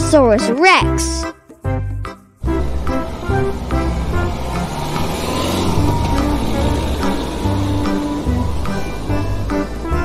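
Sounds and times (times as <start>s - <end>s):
light background music: 0.0s - 10.0s
truck engine running: 1.7s - 10.0s.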